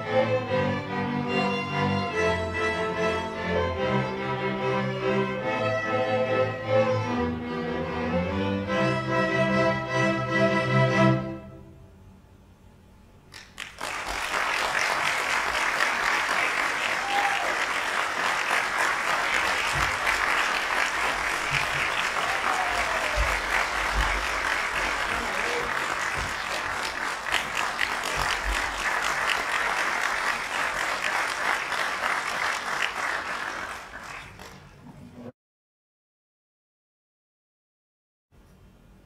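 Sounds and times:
audience applauding: 13.3s - 34.8s.

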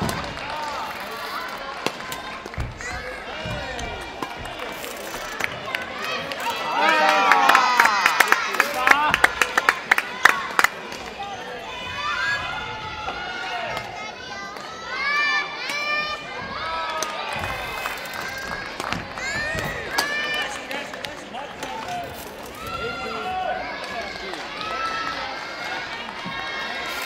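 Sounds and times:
children shouting and cheering: 5.3s - 20.5s.

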